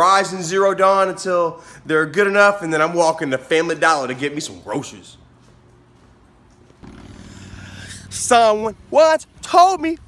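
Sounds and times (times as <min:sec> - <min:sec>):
low hum beside road: 0:05.3 - 0:10.0.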